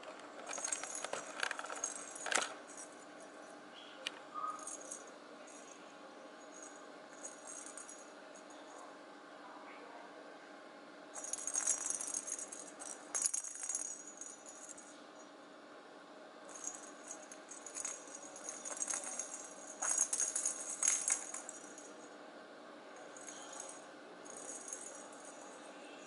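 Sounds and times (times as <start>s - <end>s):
cat toy bell jingling: 0.5s - 3.0s, 6.4s - 8.1s, 11.2s - 14.9s, 16.5s - 22.0s, 23.0s - 25.6s.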